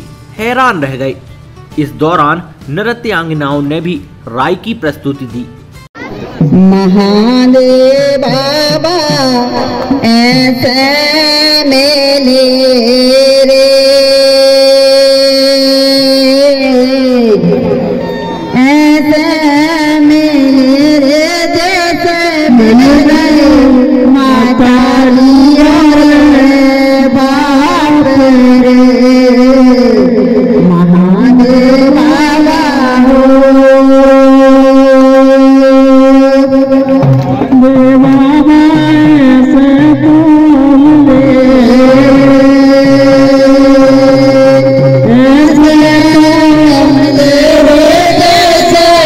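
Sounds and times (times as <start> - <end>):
man's voice: 0.3 - 5.6, 21.4 - 49.0
woman singing into a microphone: 6.4 - 49.0.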